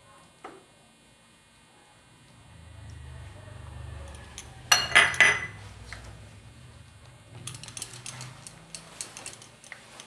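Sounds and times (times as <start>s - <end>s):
spoon clinking on bowl: 4.7s - 5.6s.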